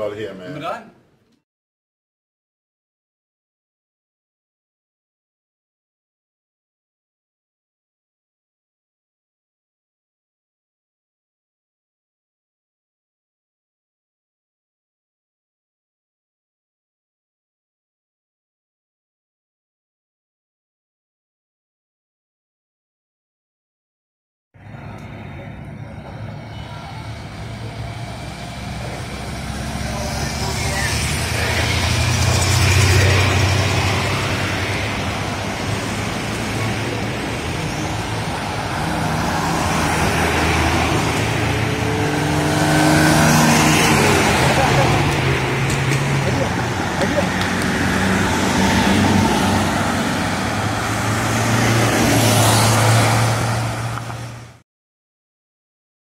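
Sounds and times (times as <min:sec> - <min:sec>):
vehicles passing: 0:00.0 - 0:01.3, 0:24.6 - 0:54.6
voices: 0:24.7 - 0:39.0, 0:43.8 - 0:49.2.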